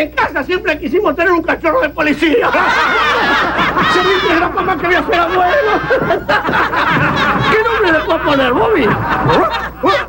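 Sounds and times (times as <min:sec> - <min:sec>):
man laughing in wavering cackle: 0:02.4 - 0:10.0.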